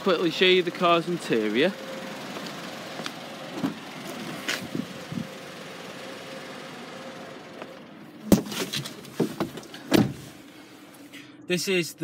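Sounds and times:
car engine idling: 0.0 - 11.3.

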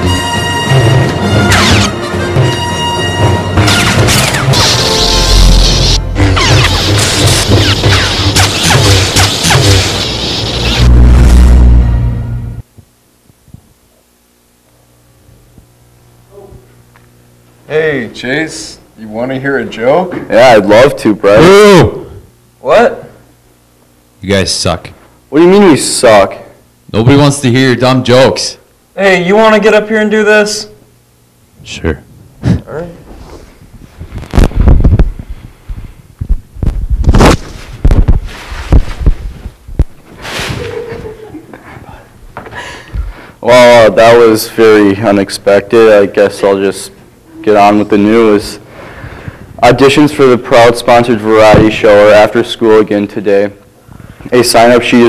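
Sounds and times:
deep electric lightsaber hum: 0.0 - 19.7
microphone handling thumps: 12.7 - 13.8, 33.5 - 41.1.

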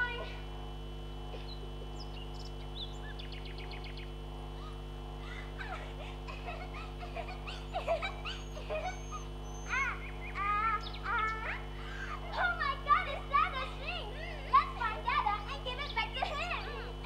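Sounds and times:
sound system hum: 0.0 - 17.0
young voices crying out: 4.5 - 17.0.

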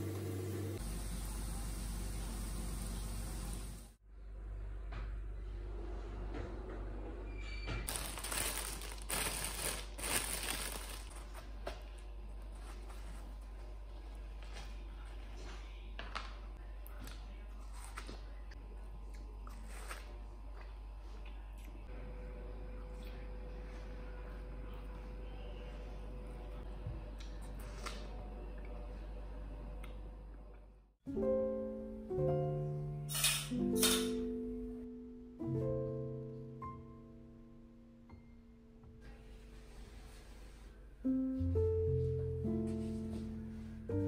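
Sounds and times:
crunching and rustling: 7.8 - 18.3
chewing watermelon: 16.8 - 21.8.

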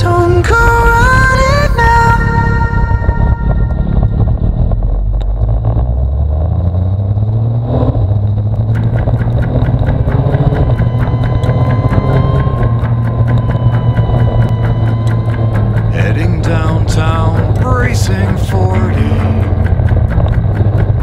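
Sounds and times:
motorcycle engine revving: 0.0 - 21.0
quick regular ticking: 8.1 - 21.0.

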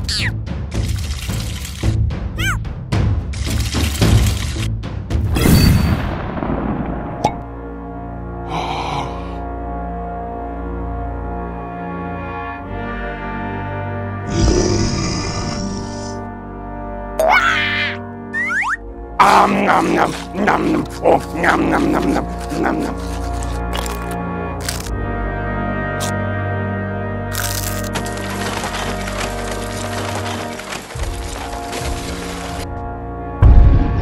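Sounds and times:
background music: 0.0 - 34.0
eggshell cracking effect: 20.2 - 24.9, 27.3 - 32.6.

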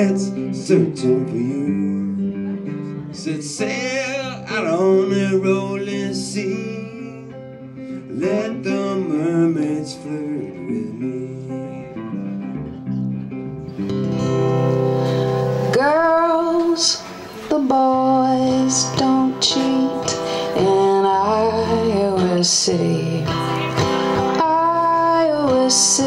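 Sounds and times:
strummed acoustic guitar: 0.0 - 26.0
woman singing: 15.6 - 26.0.

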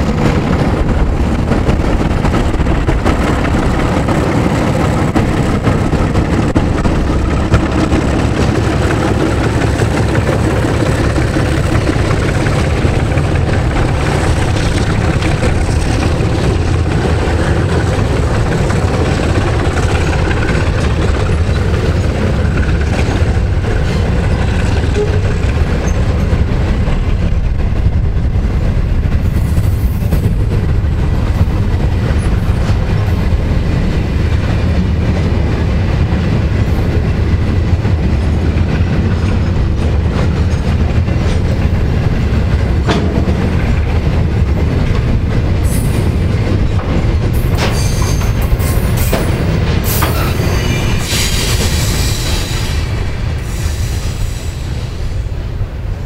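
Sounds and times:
train wheels rumbling on rails: 0.0 - 56.0
high-pitched wheel squeal: 47.7 - 48.4.

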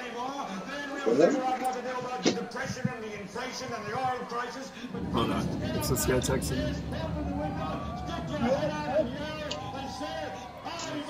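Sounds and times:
indistinct voices: 4.8 - 11.0.

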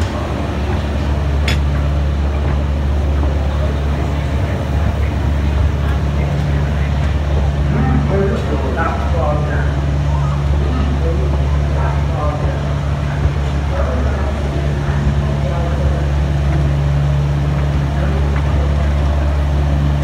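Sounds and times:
diesel locomotive engine drone: 0.0 - 20.0
voices in background: 0.0 - 20.0.

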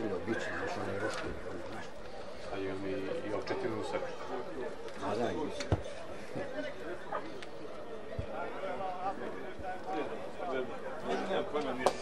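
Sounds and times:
men talking: 0.0 - 12.0.

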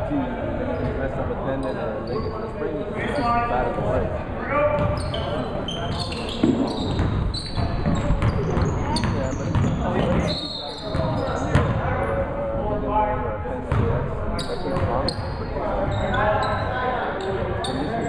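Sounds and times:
voices of players and spectators: 0.0 - 18.0.

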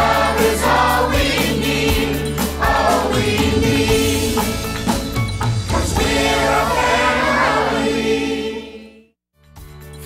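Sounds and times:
choir singing: 0.0 - 4.8, 5.7 - 9.2
instrumental backing: 0.0 - 8.0.

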